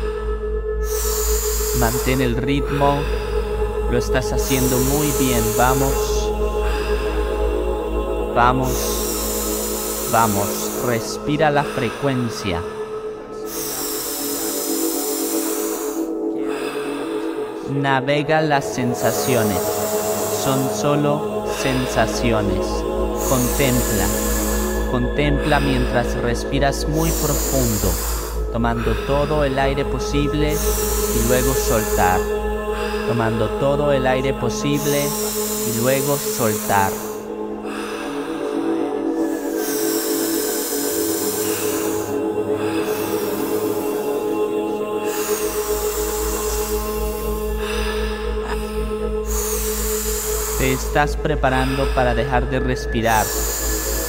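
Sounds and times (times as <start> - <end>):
forceful breath hissing: 0.0 - 54.0
steady music drone: 0.0 - 54.0.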